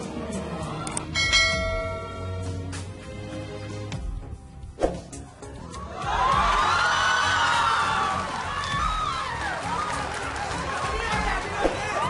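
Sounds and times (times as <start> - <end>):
background music: 0.0 - 12.0
bell-like chime ringing: 1.2 - 2.8.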